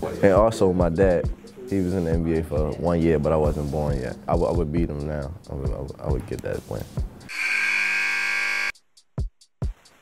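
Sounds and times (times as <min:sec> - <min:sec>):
arena buzzer blast: 0:07.3 - 0:08.8.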